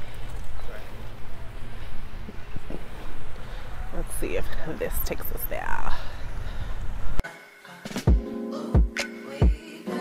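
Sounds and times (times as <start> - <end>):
wind rumble on microphone: 0.3 - 7.2
music with steady beat: 7.2 - 10.0.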